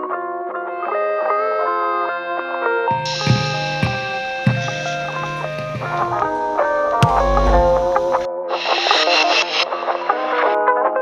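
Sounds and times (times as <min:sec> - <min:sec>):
guitar with effects: 0:02.9 - 0:09.3.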